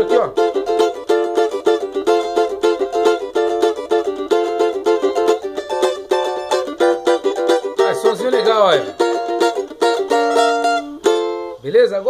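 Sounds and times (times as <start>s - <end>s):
cavaquinho strummed: 0.0s - 12.0s.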